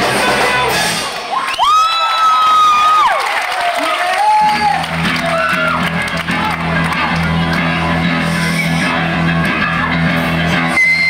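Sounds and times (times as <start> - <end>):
crowd cheering: 0.0 - 11.0
electric guitars and bass: 4.1 - 11.0.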